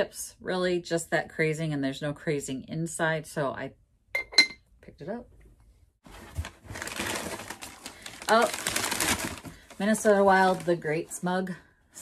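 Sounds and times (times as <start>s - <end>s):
rustling and crackling handling: 6.0s - 11.3s.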